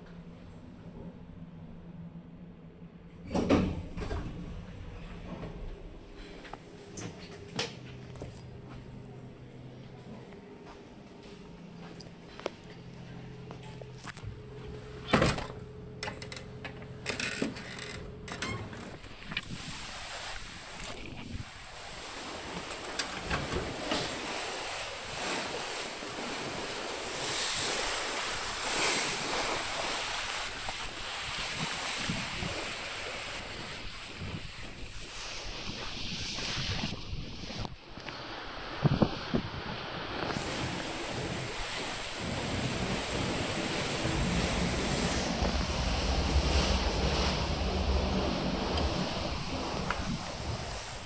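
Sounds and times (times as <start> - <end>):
low indoor hum: 0.0 - 51.0
sea rushing alongside ship: 17.0 - 51.0
wind on microphone: 19.0 - 22.0, 27.2 - 51.0.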